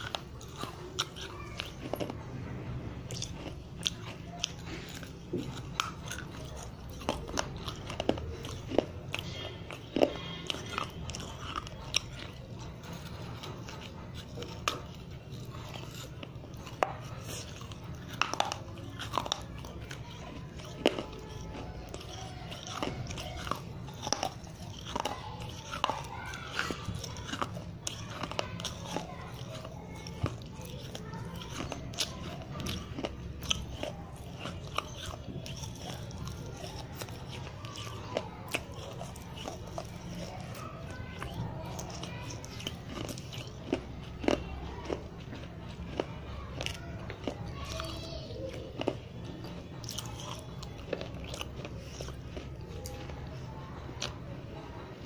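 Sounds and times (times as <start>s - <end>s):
clay being chewed crunching: 0.0s - 55.0s.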